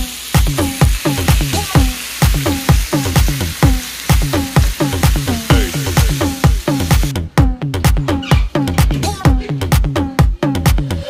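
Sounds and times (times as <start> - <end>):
fish sizzling on a griddle: 0.0 - 7.1
electronic dance music: 0.0 - 8.0.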